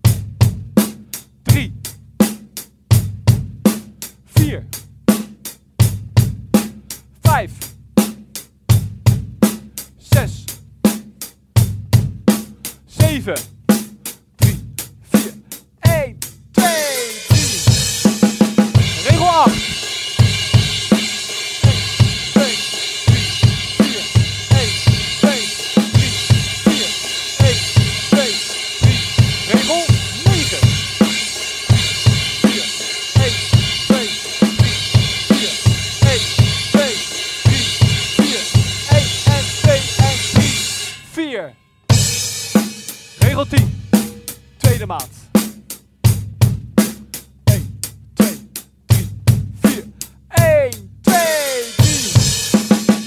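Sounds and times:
rock drum groove: 0.0s - 53.0s
closed hi-hat eighths: 6.7s - 7.8s, 12.3s - 41.4s, 42.0s - 45.9s, 46.9s - 53.0s
washy cymbal eighth notes: 17.0s - 41.1s.

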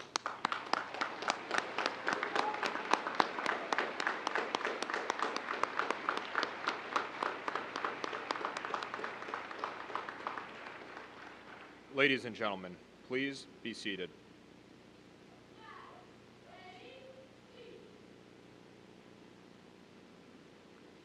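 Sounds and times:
audience applauding: 0.0s - 11.8s.

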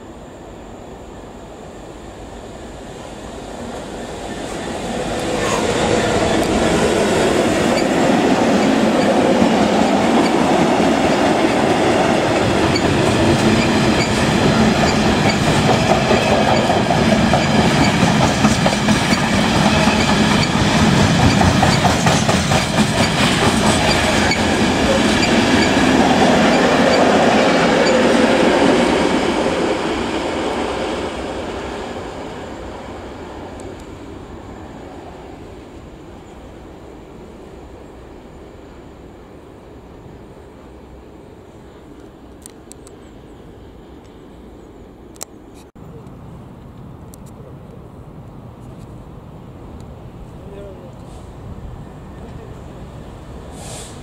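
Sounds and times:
diesel locomotive passing: 0.0s - 54.0s.

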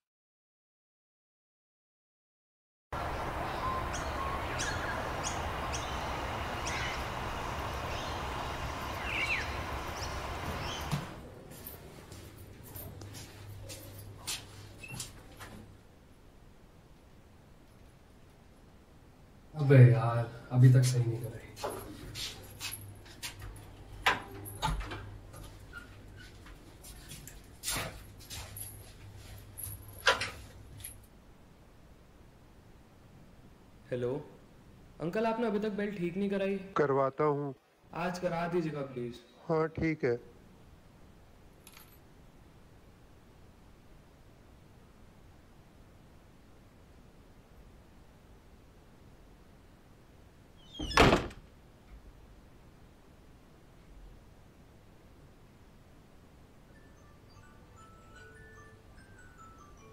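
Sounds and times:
small birds chirping: 3.0s - 11.2s
low outdoor rumble: 3.0s - 14.2s
low steady hum: 3.0s - 35.1s.

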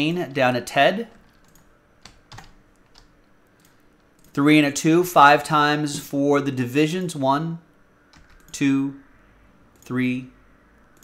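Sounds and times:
keyboard clicks: 1.1s - 4.4s, 8.1s - 8.6s.

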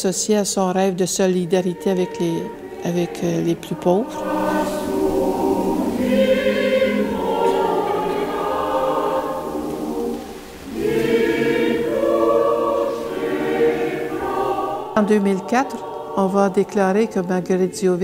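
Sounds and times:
choir singing sacred music: 0.8s - 18.0s.

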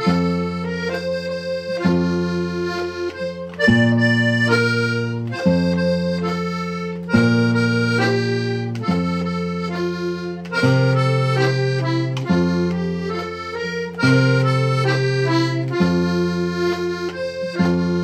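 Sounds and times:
button accordion playing a tune: 0.0s - 18.0s
guitar accompaniment: 0.0s - 18.0s.

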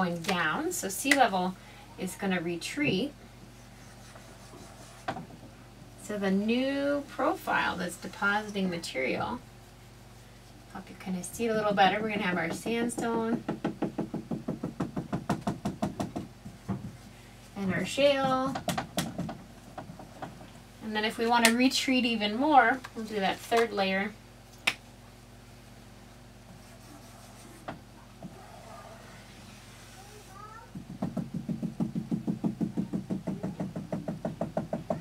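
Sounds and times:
low room hum: 0.0s - 35.0s
marker rubbing on whiteboard: 3.6s - 5.2s, 26.6s - 27.8s
marker tapping on a whiteboard: 12.5s - 17.0s, 30.7s - 35.0s.

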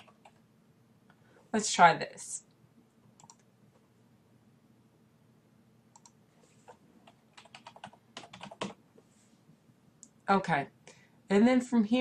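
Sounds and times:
computer keyboard typing: 0.0s - 0.4s, 3.1s - 3.5s, 5.9s - 8.8s.

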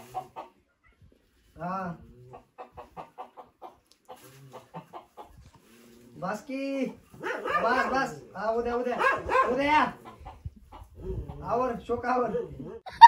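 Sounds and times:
hens clucking: 0.0s - 0.8s, 1.9s - 12.0s.

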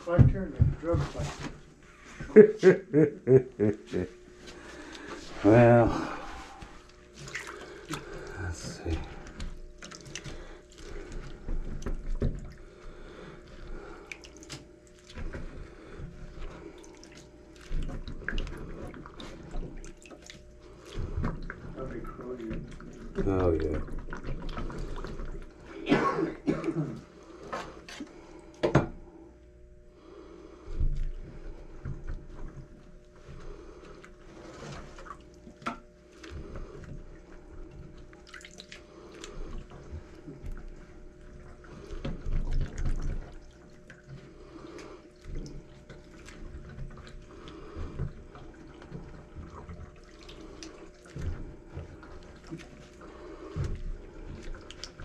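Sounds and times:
hand sloshing water in sink: 4.3s - 28.6s, 30.6s - 55.0s
water splashes and drips: 4.8s - 25.7s, 34.0s - 55.0s.

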